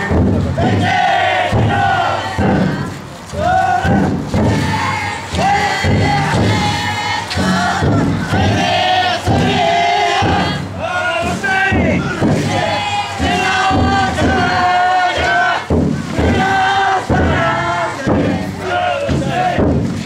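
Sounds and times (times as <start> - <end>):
group shouting rhythmic chant: 0.0 - 20.0.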